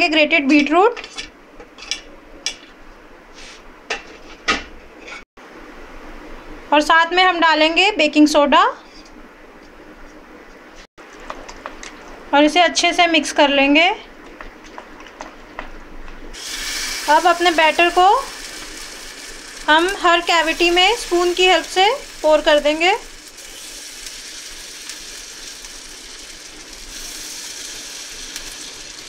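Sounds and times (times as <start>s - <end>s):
batter sizzling in a pan: 16.3s - 29.0s.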